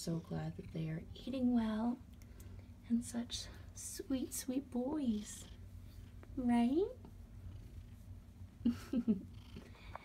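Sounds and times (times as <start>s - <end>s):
cat purring: 0.0s - 2.0s, 3.4s - 10.0s.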